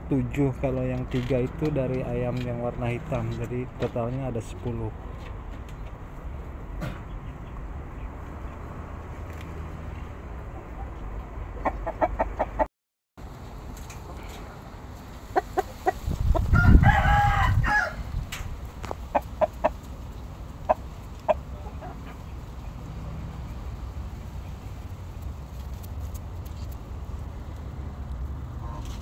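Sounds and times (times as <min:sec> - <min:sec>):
rooster crowing: 0:16.5 - 0:18.2.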